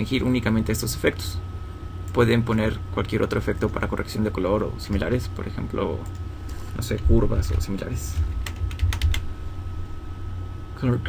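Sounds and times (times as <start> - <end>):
computer keyboard key clicks: 8.4 - 9.2.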